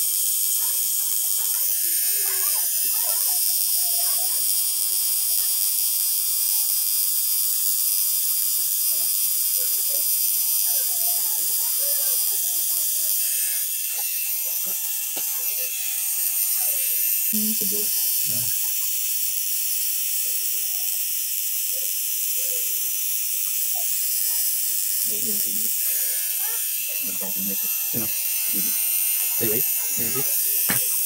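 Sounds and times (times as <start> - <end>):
tattoo machine buzzing: 0.0 - 31.0.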